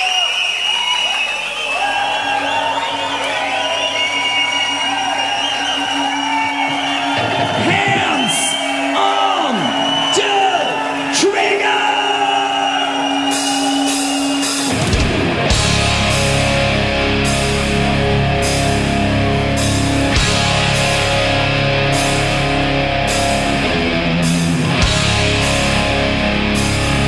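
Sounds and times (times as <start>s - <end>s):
crowd cheering and shouting: 0.0s - 27.0s.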